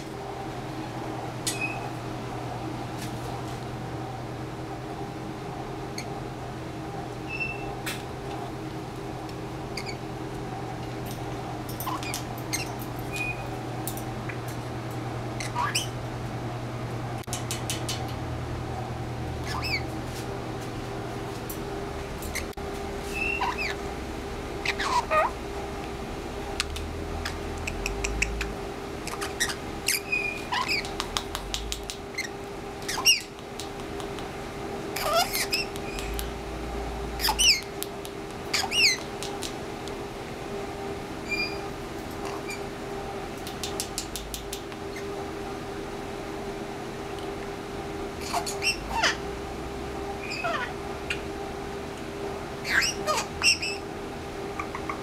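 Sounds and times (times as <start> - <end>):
parrot squeaky chirps: 1.5 - 1.9, 7.3 - 7.7, 9.8 - 10.0, 11.9 - 13.5, 15.4 - 16.0, 19.4 - 19.8, 23.1 - 23.8, 24.6 - 25.3, 27.2 - 30.9, 32.1 - 33.3, 35.0 - 36.1, 37.2 - 37.7, 38.5 - 39.1, 41.3 - 41.6, 48.2 - 49.2, 50.2 - 51.2, 52.6 - 53.8
parrot clicks: 17.3 - 18.1, 26.6 - 28.5, 30.6 - 34.3, 37.5 - 40.0, 43.4 - 44.8.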